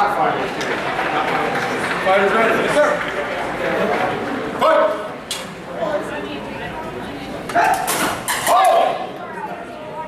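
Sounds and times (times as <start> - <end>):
loud shouts: 7.5 - 9.2.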